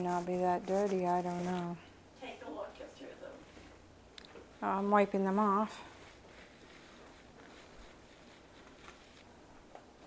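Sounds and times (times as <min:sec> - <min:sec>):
faint soft rustles: 0:00.0 - 0:10.0
low steady hum: 0:00.0 - 0:10.0.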